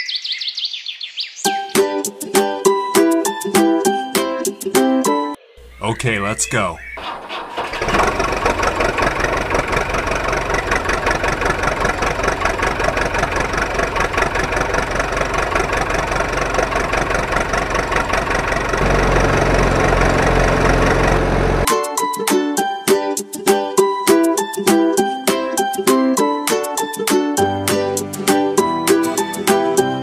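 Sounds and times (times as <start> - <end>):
tractor engine running: 5.6 - 21.7.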